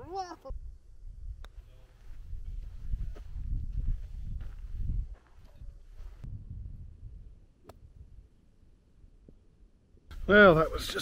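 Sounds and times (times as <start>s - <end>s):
wind gusting on microphone: 0.4s - 8.3s.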